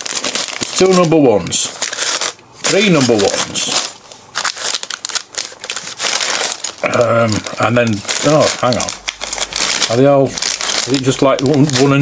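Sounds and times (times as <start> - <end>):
plastic bags crinkling and rustling: 0.0 - 12.0.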